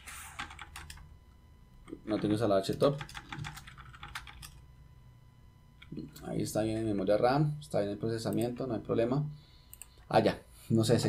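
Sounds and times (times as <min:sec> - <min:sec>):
computer keyboard typing: 0:00.3 - 0:01.1, 0:01.8 - 0:04.7.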